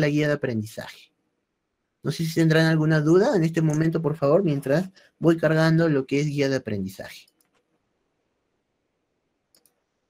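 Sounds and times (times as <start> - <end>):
computer mouse double-clicking: 9.5 - 9.8.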